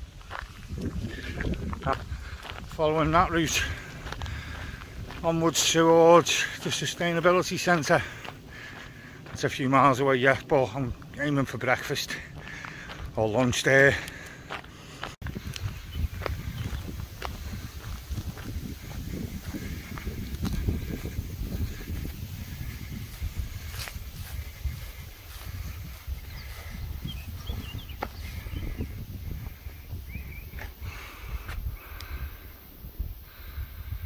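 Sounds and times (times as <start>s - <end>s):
wind buffeting microphone: 0.0s - 34.0s
bird chirps: 26.1s - 29.0s, 30.0s - 30.7s.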